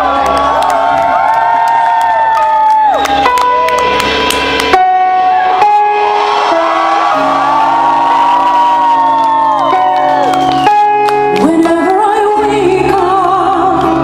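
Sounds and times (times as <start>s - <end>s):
sustained chords: 3.0s - 14.0s.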